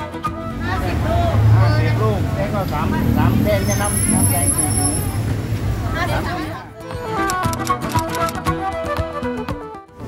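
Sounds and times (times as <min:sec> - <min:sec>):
street traffic rumble: 0:00.0 - 0:08.4.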